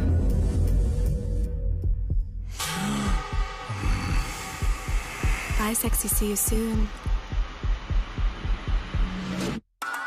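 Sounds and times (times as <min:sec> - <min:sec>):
low heartbeat-like thumping: 0:00.0 - 0:09.4.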